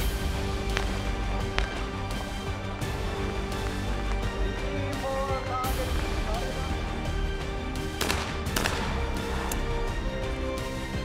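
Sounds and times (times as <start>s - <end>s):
background music: 0.0s - 11.0s
shotgun shots: 8.0s - 9.6s.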